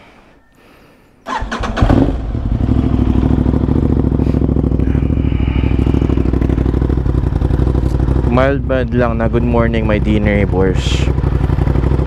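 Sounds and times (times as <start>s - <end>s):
motorcycle engine starting and idling: 1.2s - 12.0s.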